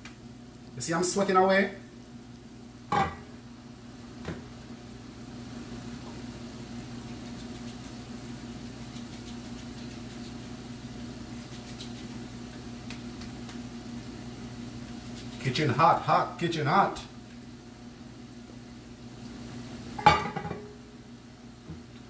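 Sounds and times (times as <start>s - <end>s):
low electrical hum: 0.0s - 22.0s.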